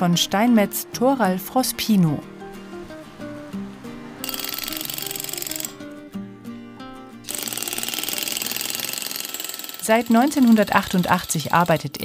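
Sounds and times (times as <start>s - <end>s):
background music: 0.0s - 12.0s
pneumatic hammer chiselling stone: 7.3s - 12.0s.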